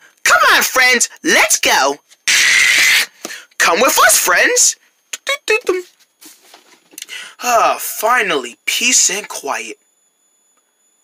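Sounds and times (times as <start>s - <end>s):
faint rustling: 5.8s - 7.0s.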